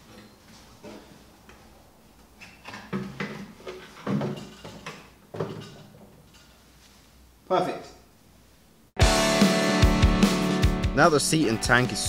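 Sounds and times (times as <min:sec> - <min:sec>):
plastic parts clunking and scraping: 0:02.4 - 0:06.6.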